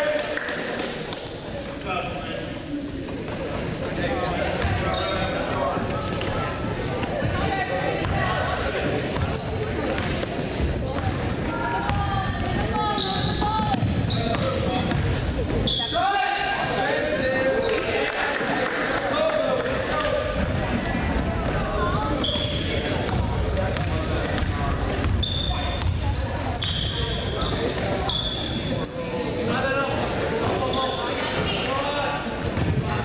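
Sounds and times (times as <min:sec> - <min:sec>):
sneakers squeaking on court: 0:04.6 - 0:17.2, 0:21.8 - 0:29.7.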